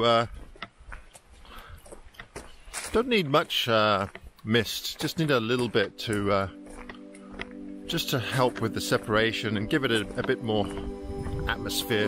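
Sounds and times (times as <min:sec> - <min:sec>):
person speaking: 0:00.0 - 0:00.3, 0:02.8 - 0:12.0
footsteps on gravel: 0:00.0 - 0:12.0.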